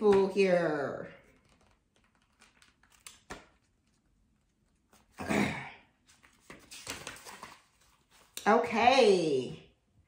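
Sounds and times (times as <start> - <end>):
book pages being leafed through: 6.1 - 8.4.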